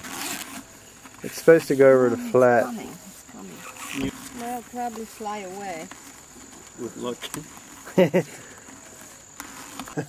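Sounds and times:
high insect drone: 0.0 - 10.0
person laughing: 7.9 - 8.4.

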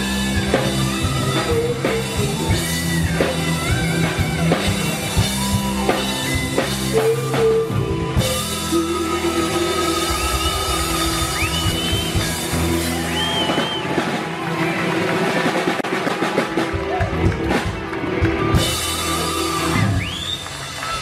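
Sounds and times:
rock music with drums and guitars: 0.0 - 21.0
sliding high melodic line: 4.8 - 13.1.

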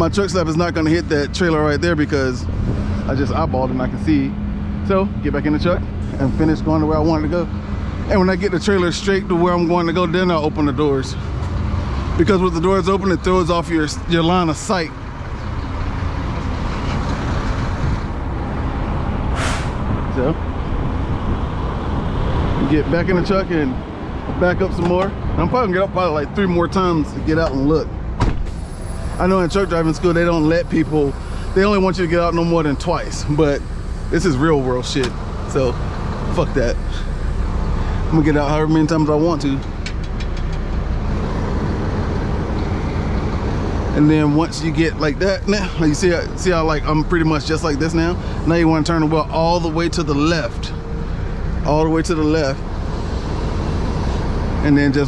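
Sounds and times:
diesel engine idling: 0.0 - 55.0
air hiss: 19.3 - 19.9.

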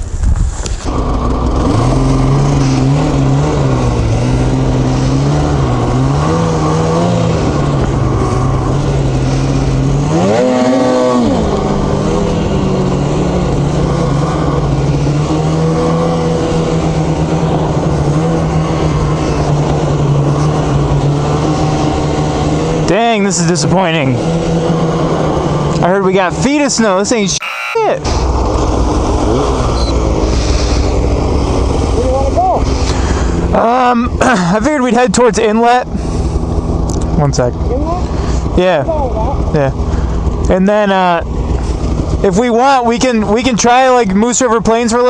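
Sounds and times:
snowmobile engine running: 0.0 - 22.9, 23.6 - 44.2.

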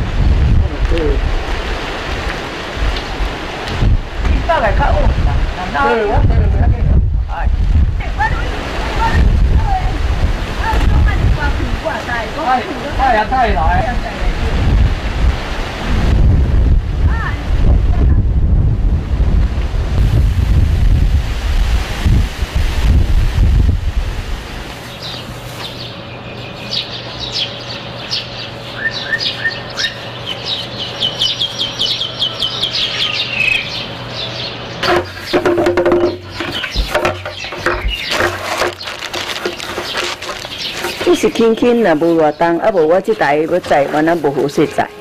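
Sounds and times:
wind buffeting microphone: 0.0 - 25.2, 34.8 - 45.0
small birds chirping: 24.8 - 45.0
plastic bags rustling: 35.0 - 42.0.

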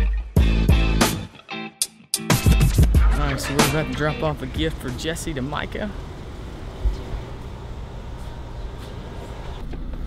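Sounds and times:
vehicle engine rumbling: 3.1 - 10.0.

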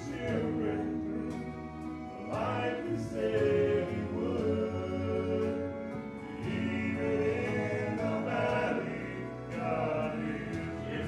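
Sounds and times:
male vocal quartet singing in harmony: 0.0 - 11.0.

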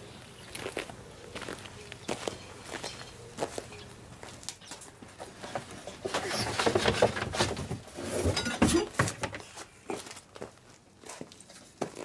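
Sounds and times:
footsteps on concrete: 9.0 - 12.0.

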